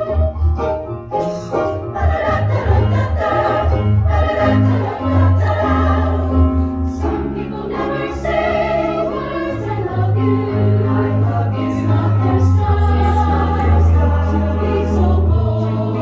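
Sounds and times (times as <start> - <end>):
chorus singing in harmony: 0.0 - 0.7, 1.6 - 16.0.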